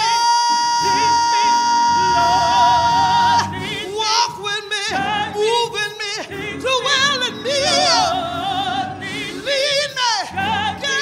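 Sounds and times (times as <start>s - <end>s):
woman singing gospel: 0.0s - 11.0s.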